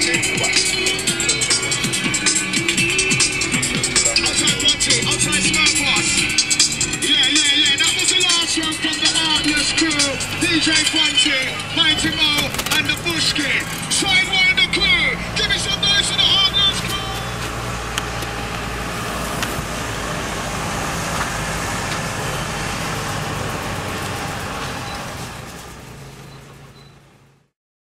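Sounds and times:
vehicle engine and road noise: 0.0 - 27.6.

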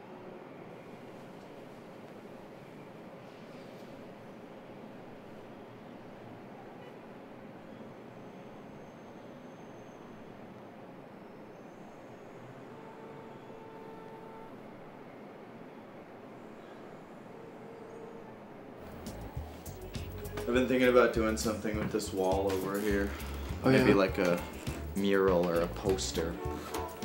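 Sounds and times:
background hiss and hum: 11.2 - 27.0.

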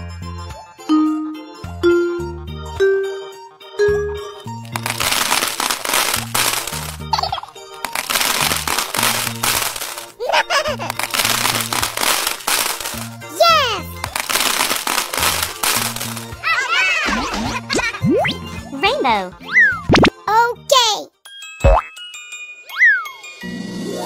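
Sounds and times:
children's music with bass beat: 0.0 - 22.0
small balls rattling into glasses: 4.6 - 16.4.

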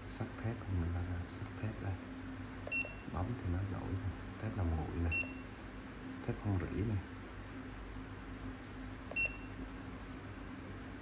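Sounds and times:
high electronic keypad beep: 2.7 - 3.1, 5.1 - 5.4, 9.1 - 9.6.

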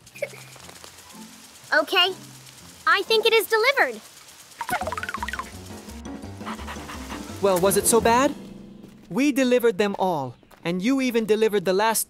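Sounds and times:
low background music: 4.7 - 9.2.

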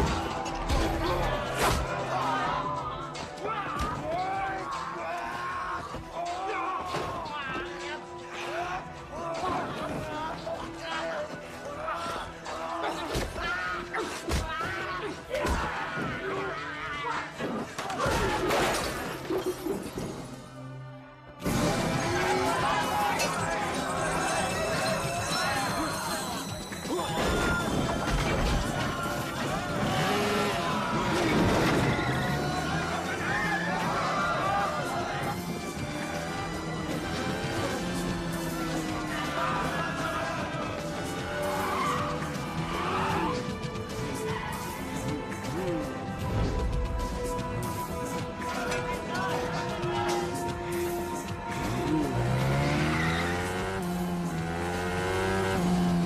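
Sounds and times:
men shouting: 0.0 - 18.5, 21.5 - 56.0
dramatic action music: 0.0 - 56.0
vehicle-like skidding: 51.5 - 56.0
engine revving up in pitch: 51.6 - 56.0.

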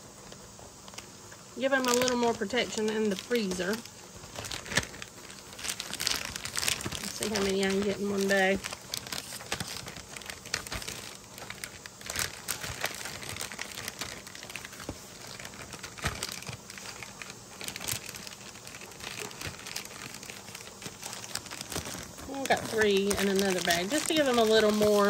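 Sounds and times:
sharp plastic crackles: 0.0 - 25.0
plastic bags crinkling: 0.2 - 25.0.

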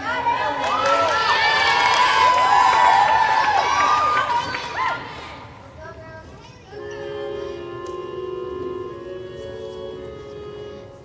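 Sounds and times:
audience cheering: 0.0 - 5.2
musical theatre backing track: 6.7 - 11.0.

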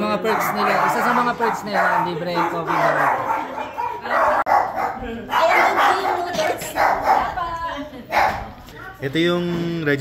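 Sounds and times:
dog barking and yipping: 0.1 - 7.4, 8.1 - 8.5.

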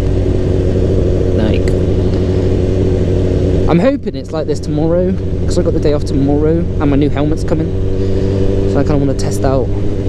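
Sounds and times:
motorcycle engine cruising: 0.0 - 10.0.

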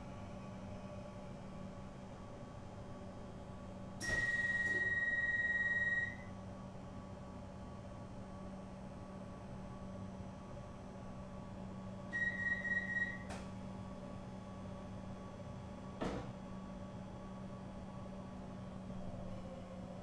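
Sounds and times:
electronic door warning tone: 4.0 - 6.3, 12.2 - 13.3.

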